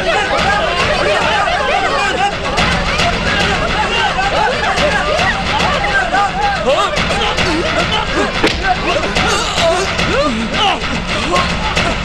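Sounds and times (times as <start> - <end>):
background music: 0.0 - 12.0
men shouting and grunting: 0.0 - 12.0.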